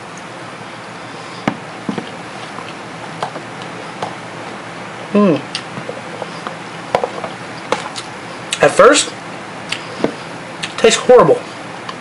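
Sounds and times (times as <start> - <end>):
person chewing cereal: 5.4 - 8.6.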